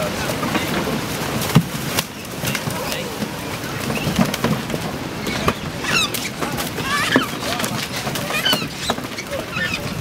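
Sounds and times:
water splashes: 0.0 - 10.0.

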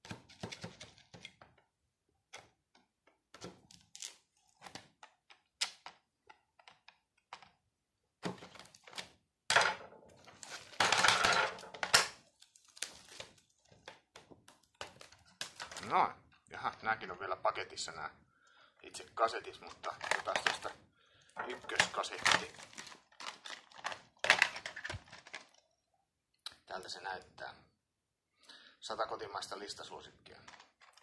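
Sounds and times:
plastic wrap crackling and tearing: 3.7 - 4.8, 10.2 - 10.8, 11.8 - 16.0, 19.6 - 20.8, 21.5 - 25.6, 30.4 - 31.0.

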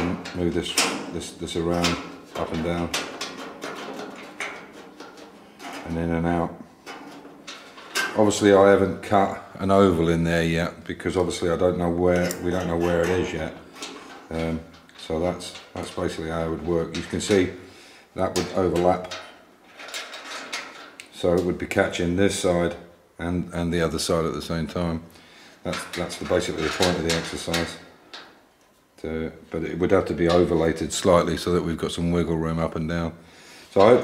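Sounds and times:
light metal clicks and scrapes: 0.0 - 8.5, 12.1 - 17.5.

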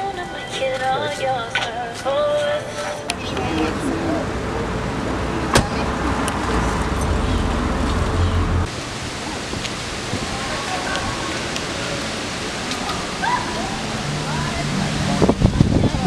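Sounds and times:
faint voices: 0.0 - 16.0
street noise hiss: 0.0 - 16.0
low rumble with steady hum: 3.1 - 9.0.

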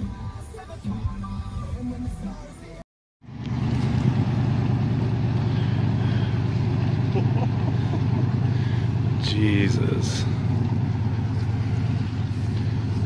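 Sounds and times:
vehicle engine running: 3.2 - 13.0
vehicle driving through water: 3.3 - 13.0.

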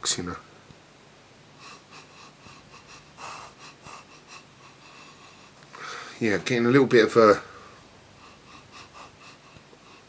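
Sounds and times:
man sniffing: 1.6 - 6.2, 7.4 - 10.0.

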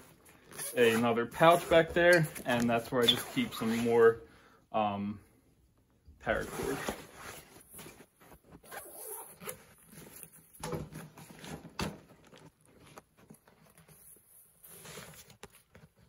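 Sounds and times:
nylon backpack rustling: 0.0 - 4.1, 6.3 - 16.0.

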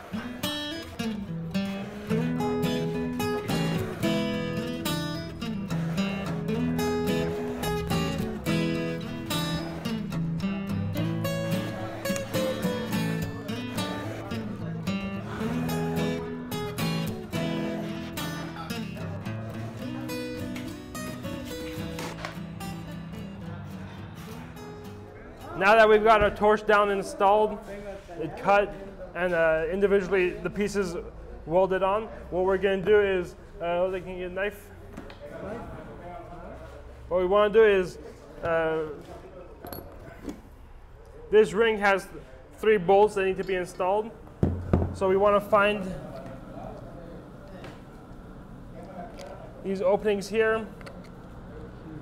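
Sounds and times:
acoustic guitar strumming: 0.0 - 25.0.

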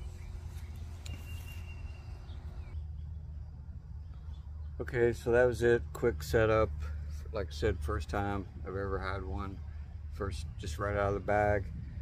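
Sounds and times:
low microphone rumble: 6.7 - 12.0.

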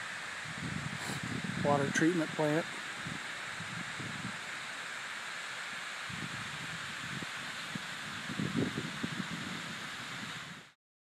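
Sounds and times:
steady rushing hiss: 0.0 - 10.8
wind buffeting on microphone: 0.4 - 4.5, 6.0 - 10.8.

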